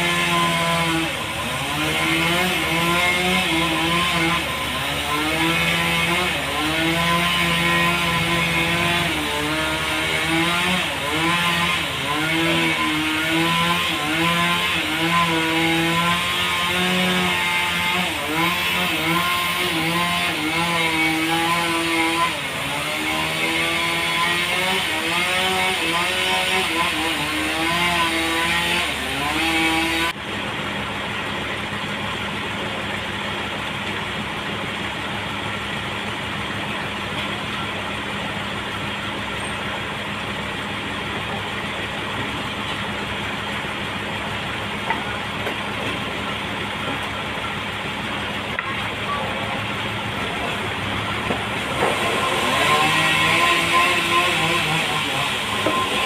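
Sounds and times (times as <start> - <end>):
forklift engine running: 0.0 - 56.0.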